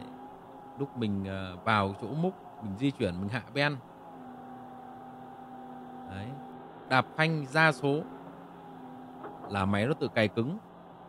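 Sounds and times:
excavator engine humming: 0:00.0 - 0:11.0.

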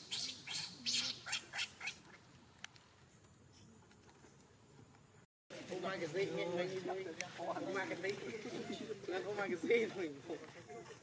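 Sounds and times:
baby monkey squealing: 0:00.0 - 0:02.0.

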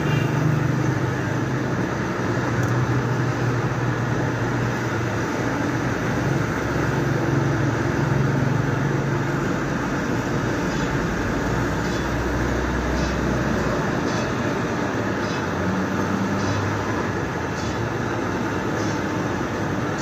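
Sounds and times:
low mechanical drone: 0:00.0 - 0:20.0.

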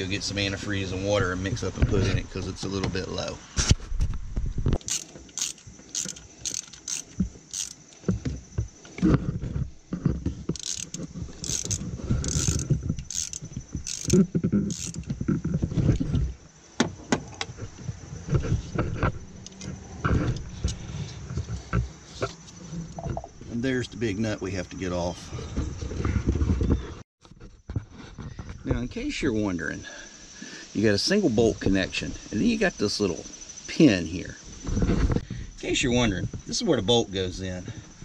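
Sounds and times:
wrench metallic clicks: 0:04.8 - 0:07.8, 0:10.6 - 0:15.1
rubbing and handling noise: 0:04.8 - 0:16.4.

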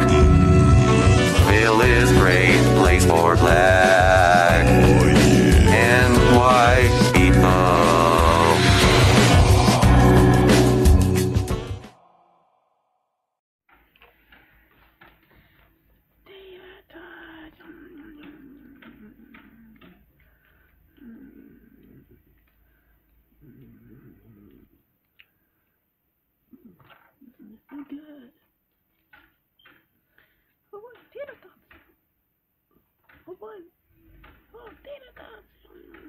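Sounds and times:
high-pitched vocal sounds: 0:01.4 - 0:11.9, 0:16.3 - 0:20.1.

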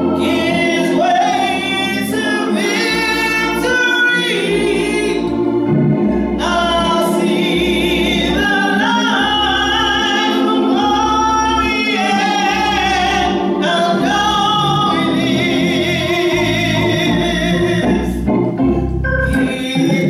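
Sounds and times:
organ bass notes: 0:00.0 - 0:20.0.

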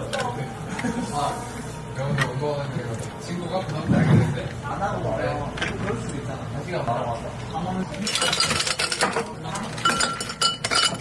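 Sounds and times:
ice cubes clinking in glasses: 0:08.0 - 0:11.0.

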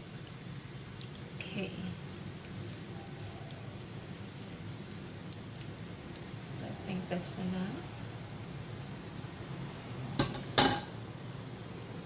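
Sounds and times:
saucepan clanking on stovetop: 0:10.2 - 0:11.0.

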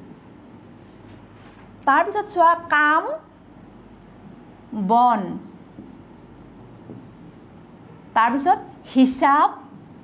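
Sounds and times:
pen scratching on board: 0:00.0 - 0:01.2, 0:05.4 - 0:07.6, 0:09.8 - 0:10.0.

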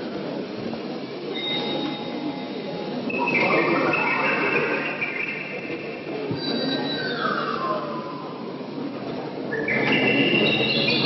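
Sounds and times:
high squealing wheels on rails: 0:00.1 - 0:11.0.

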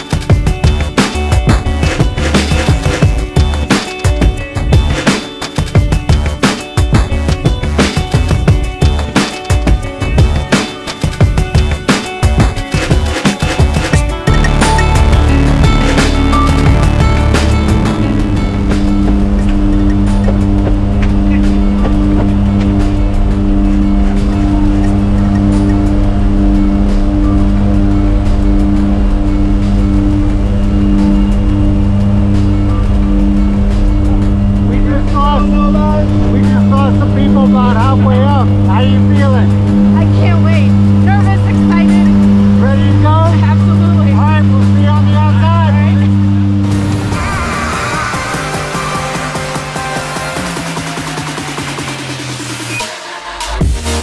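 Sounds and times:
steady beat: 0:00.0 - 0:54.0
low droning note: 0:12.4 - 0:52.7.

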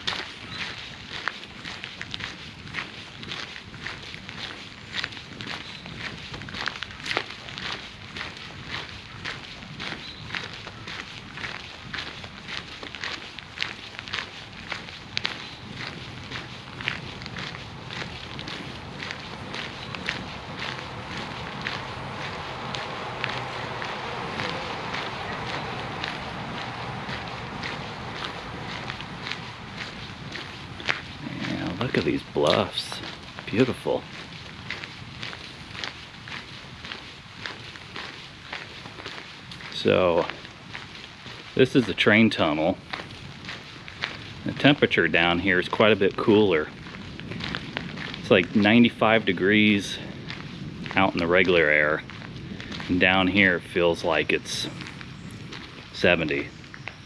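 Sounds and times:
footsteps on a trail: 0:00.0 - 0:57.0.

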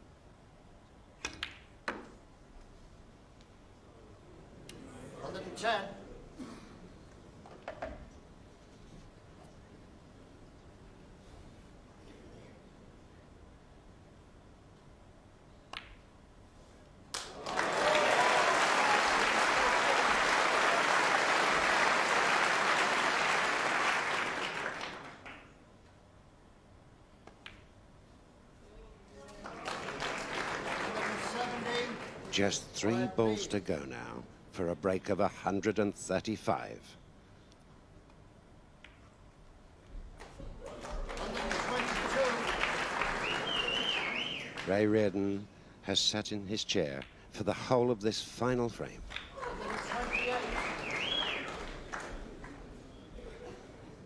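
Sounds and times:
snooker ball clicks: 0:01.2 - 0:02.2, 0:15.7 - 0:16.0, 0:27.2 - 0:27.7
audience applause: 0:17.2 - 0:25.4, 0:29.4 - 0:32.4, 0:40.6 - 0:44.7, 0:49.3 - 0:52.7.

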